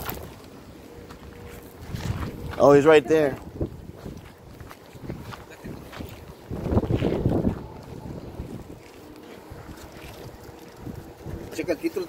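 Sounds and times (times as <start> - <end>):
wind buffeting microphone: 1.3 - 12.0.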